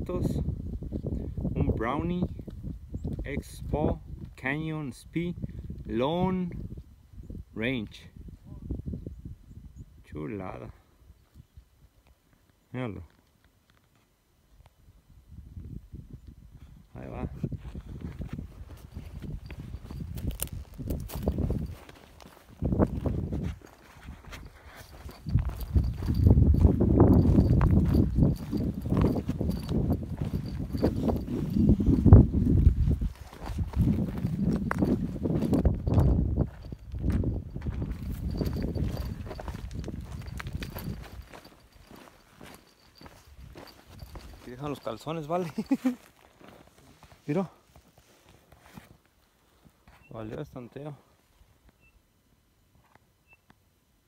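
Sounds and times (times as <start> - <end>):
microphone rubbing on clothing: 15.4 - 45.0, 45.7 - 50.1
footsteps on loose rocky ground: 17.1 - 50.4.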